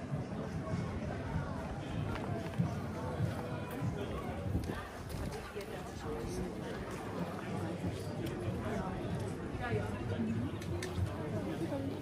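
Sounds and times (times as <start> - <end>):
passers-by talking indistinctly: 0.0 - 12.0.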